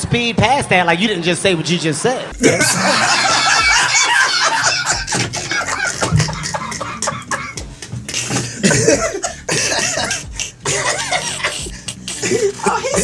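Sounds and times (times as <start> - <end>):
people coughing: 2.4 - 13.0
people laughing: 2.4 - 13.0.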